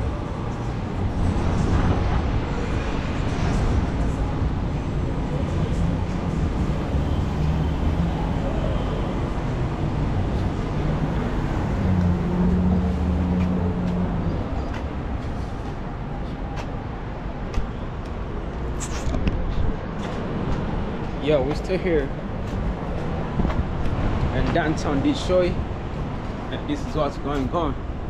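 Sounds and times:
road noise: 0:00.0 - 0:28.0
vehicle engine rumble: 0:00.0 - 0:28.0.

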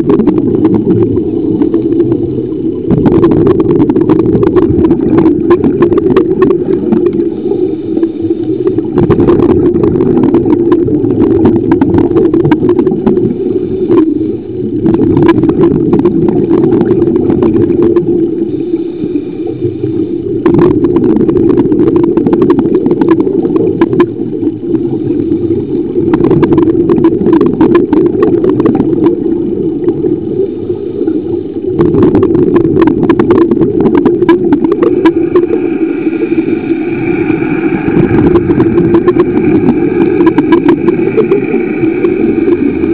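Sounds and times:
underwater crackles and clicks: 0:00.0 - 0:42.9
underwater rush of water: 0:00.0 - 0:42.9.

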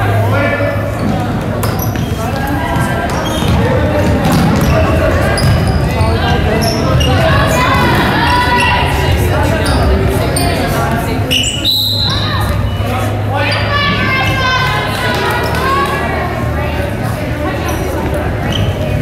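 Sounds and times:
people calling out: 0:01.9 - 0:16.6.

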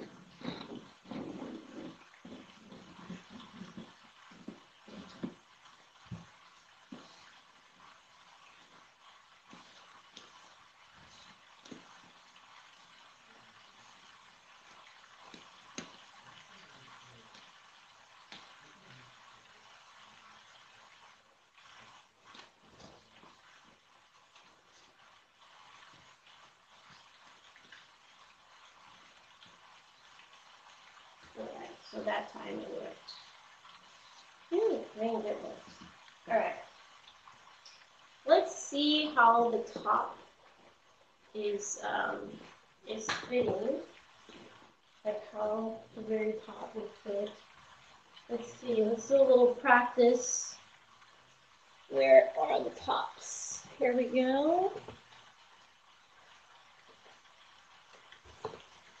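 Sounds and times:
room hiss: 0:00.0 - 0:59.0.

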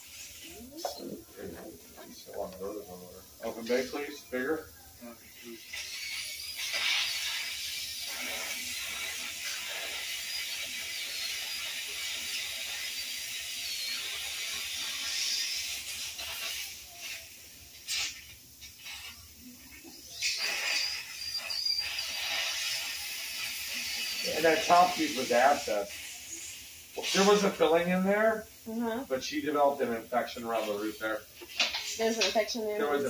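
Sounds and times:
dental drill whining: 0:05.5 - 0:17.2, 0:19.8 - 0:27.4.

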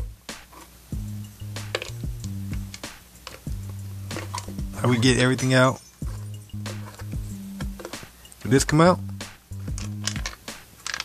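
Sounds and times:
background music with bass notes: 0:00.0 - 0:10.8
plastic parts clicking and knocking: 0:01.7 - 0:02.0, 0:07.8 - 0:08.0, 0:09.7 - 0:11.0.

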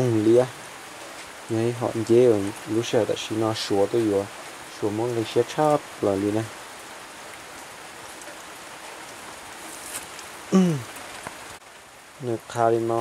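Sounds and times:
steady hiss: 0:00.0 - 0:13.0
person speaking word: 0:10.5 - 0:10.9.

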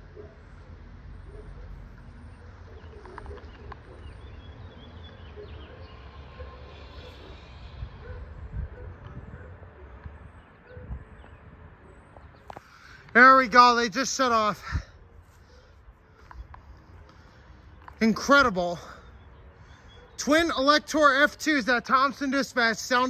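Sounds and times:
distant warning sirens: 0:00.0 - 0:22.7.

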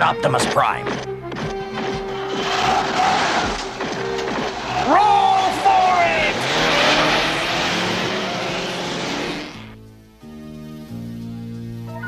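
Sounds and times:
vehicles rushing past: 0:01.9 - 0:10.1
cartoon engines revving: 0:02.2 - 0:09.8
steady rushing noise: 0:02.4 - 0:09.8.

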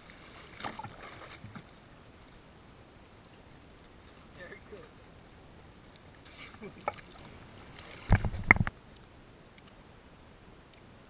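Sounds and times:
water splashing: 0:00.0 - 0:01.8, 0:06.1 - 0:08.8.

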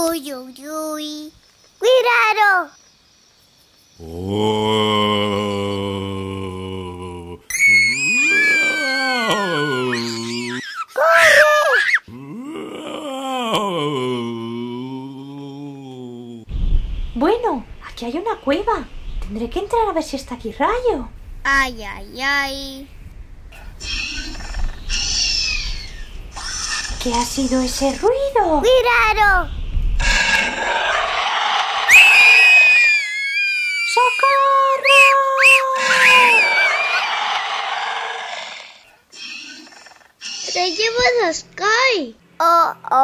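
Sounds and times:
low moaning voice: 0:04.0 - 0:10.6, 0:12.1 - 0:16.5, 0:34.2 - 0:37.2
high wail sliding down: 0:07.5 - 0:10.6, 0:30.5 - 0:38.7
loud scream: 0:07.5 - 0:12.2, 0:30.4 - 0:39.6.

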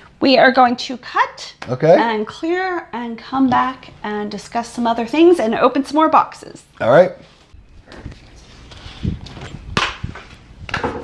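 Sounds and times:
microphone rustling on clothing: 0:07.2 - 0:10.7.

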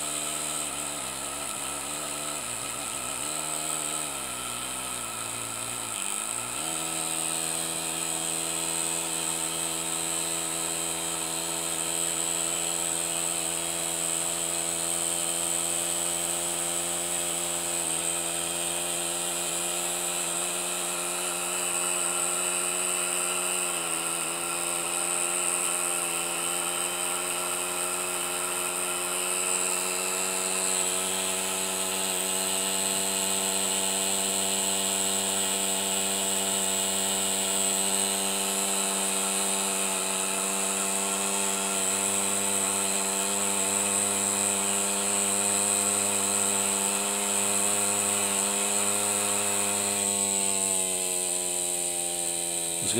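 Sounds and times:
miniature steam engine running: 0:00.0 - 0:52.9.

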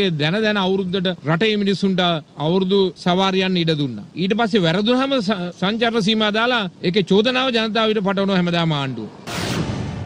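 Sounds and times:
man speaking: 0:00.0 - 0:09.2
whoosh and boom sound effect: 0:09.2 - 0:10.0.

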